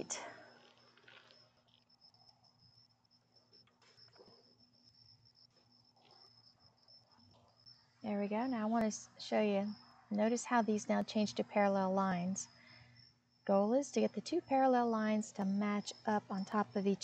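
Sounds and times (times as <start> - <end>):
high-pitched insect trill: 0.5 - 10.8.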